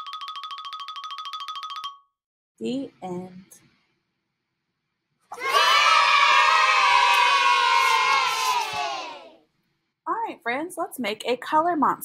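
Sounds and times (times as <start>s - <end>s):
children cheering: 5.3s - 9.4s.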